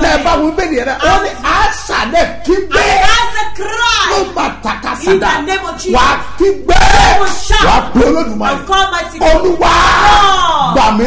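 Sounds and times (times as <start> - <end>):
man talking loudly: 0.0 - 11.0.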